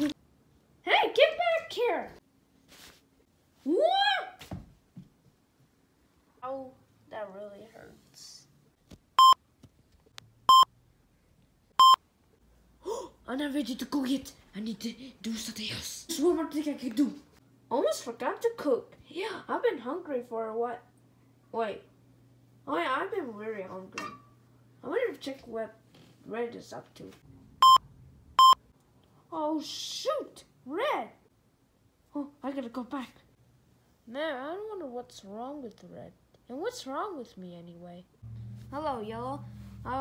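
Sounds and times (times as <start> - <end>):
short electronic beeps: 10.5 - 10.7, 11.8 - 12.0, 27.6 - 27.8
electronic beeps: 11.8 - 12.0.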